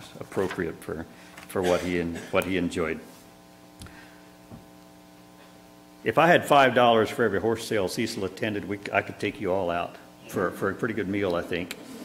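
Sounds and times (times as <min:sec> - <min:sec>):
mains hum: 0:00.0 - 0:12.0.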